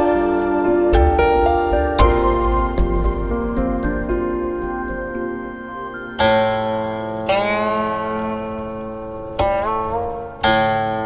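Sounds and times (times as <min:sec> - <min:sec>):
plucked zither notes: 0:00.0 - 0:11.0.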